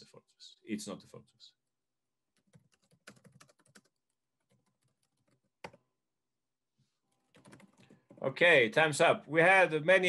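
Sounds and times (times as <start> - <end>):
computer keys clicking: 2.4 - 5.8, 7.3 - 8.2.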